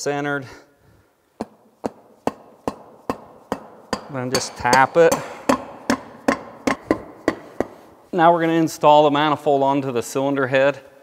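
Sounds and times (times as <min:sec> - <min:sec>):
rubber mallet tapping metal: 0:01.4 - 0:08.0.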